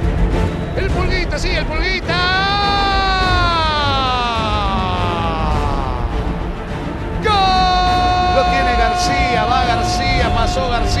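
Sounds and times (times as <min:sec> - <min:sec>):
commentator shouting goal: 0:00.8 - 0:06.2, 0:07.2 - 0:11.0.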